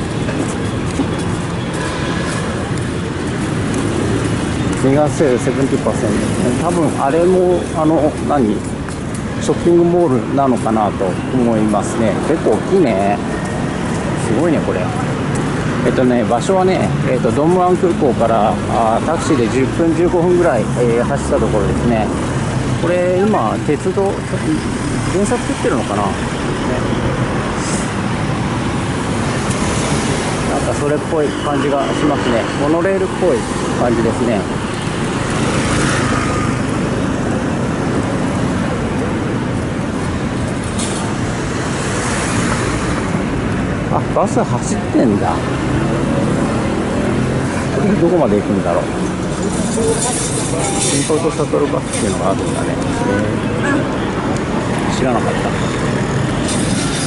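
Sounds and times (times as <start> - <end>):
cars passing close by: 0.0 - 57.0
motor traffic rumble: 0.0 - 57.0.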